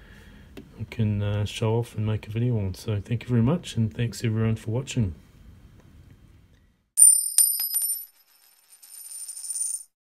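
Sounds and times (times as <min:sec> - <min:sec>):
coin clinking: 0:07.0 - 0:10.0.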